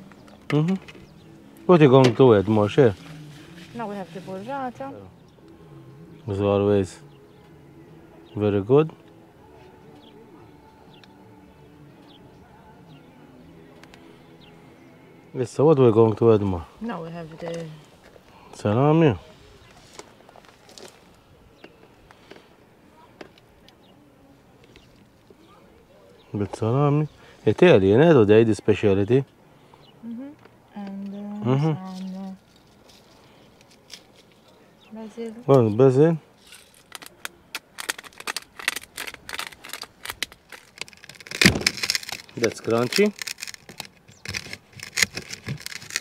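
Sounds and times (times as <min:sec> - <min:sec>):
knife crunching through bread crust: 0:36.9 - 0:46.0.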